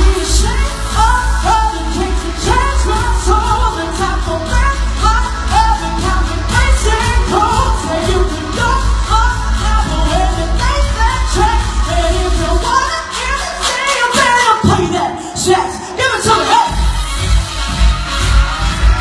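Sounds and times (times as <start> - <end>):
pop backing track with heavy bass: 0.0 - 19.0.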